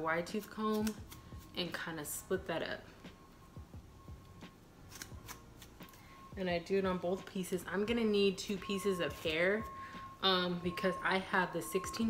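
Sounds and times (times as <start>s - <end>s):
comb rustling through hair: 0.2s - 1.8s.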